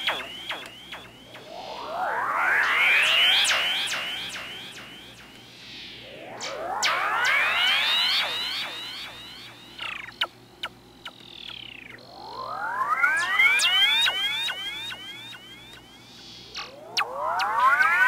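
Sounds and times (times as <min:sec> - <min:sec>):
sharp clicks: 0:00.0 - 0:01.2
synthesizer falling glide: 0:00.0 - 0:18.0
synthesizer rising pitch sweeps: 0:00.0 - 0:18.0.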